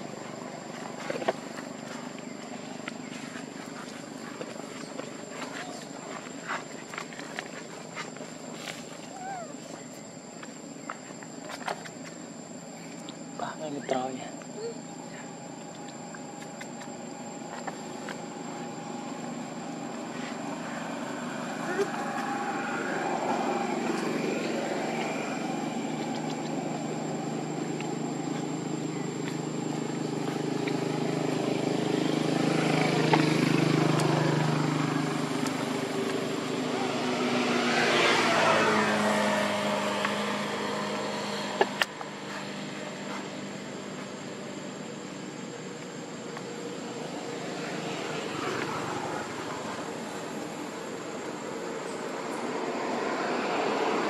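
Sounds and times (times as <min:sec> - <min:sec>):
engine humming: 0:14.4 - 0:54.0.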